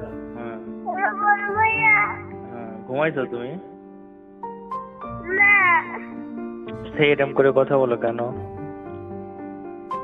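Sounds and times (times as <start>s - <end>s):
background music: 0.0s - 10.0s
meow-like call: 0.9s - 2.3s.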